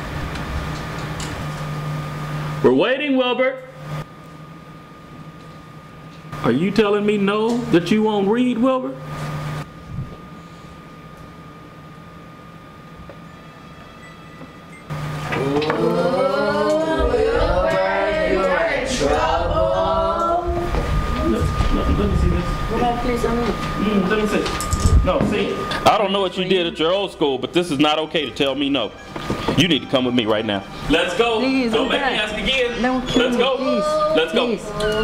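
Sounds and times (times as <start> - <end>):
low hum: 3.6 - 29.3
person singing: 15.4 - 20.8, 33.4 - 35.0.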